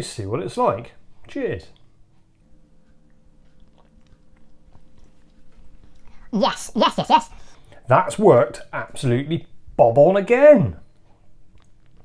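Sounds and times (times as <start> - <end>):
low steady hum: 0.0 - 12.0
lip and tongue clicks: 1.7 - 6.2, 11.5 - 12.0
person sipping and swallowing: 2.7 - 6.2.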